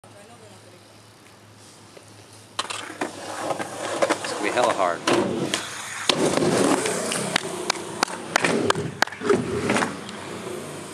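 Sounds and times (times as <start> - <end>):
skateboard wheels rolling on concrete: 0.2 - 10.9.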